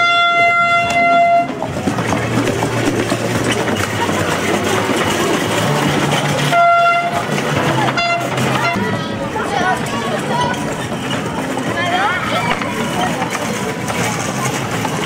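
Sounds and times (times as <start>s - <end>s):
buzzy horn toots: 0.0s - 1.6s, 6.5s - 7.3s, 7.9s - 9.0s
street crowd chatter: 0.0s - 15.0s.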